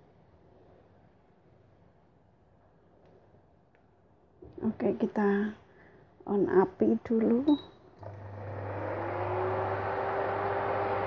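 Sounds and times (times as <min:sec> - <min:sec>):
cooling fan whirring: 0:08.0 - 0:11.0.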